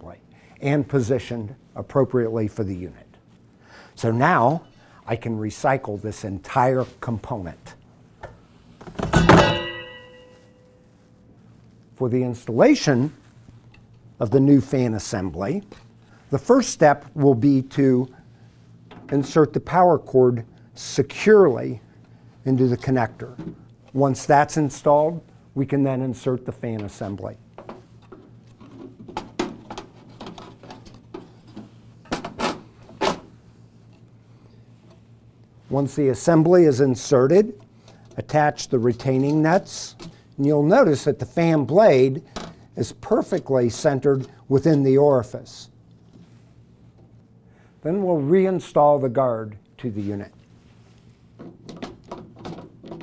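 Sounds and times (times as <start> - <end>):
fan assembly dropped into plastic bin: 8.8 - 10.0
metallic ringing: 9.1 - 11.2.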